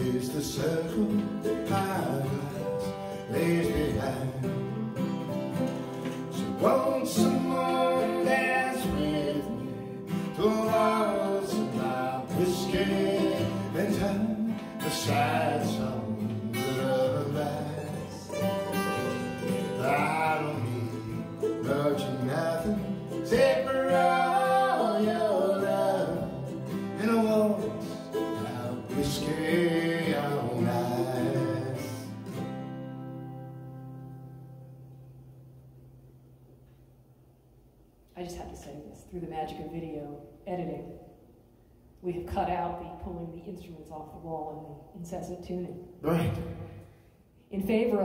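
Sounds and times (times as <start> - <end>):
person singing: 0.0 - 4.9, 6.4 - 32.2
mandolin: 0.0 - 34.8
strummed acoustic guitar: 0.0 - 35.5.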